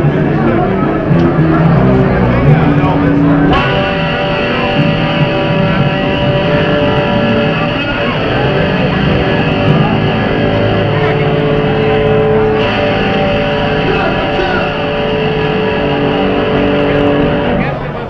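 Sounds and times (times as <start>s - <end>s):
distorted electric guitars: 0.0s - 18.0s.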